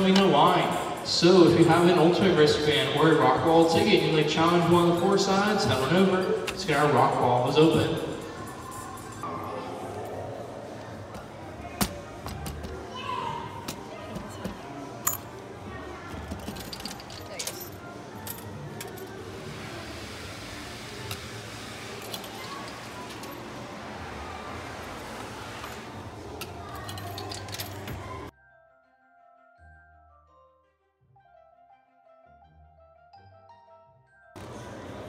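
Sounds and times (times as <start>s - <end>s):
metallic token clinks: 16.3s - 19.1s, 26.6s - 28.3s
arcade music: 27.4s - 34.4s.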